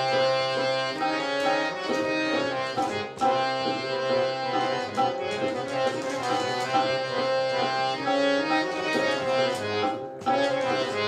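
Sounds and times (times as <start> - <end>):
harmonium melody over drone: 0.0 - 11.0
tabla rhythm: 0.0 - 11.0.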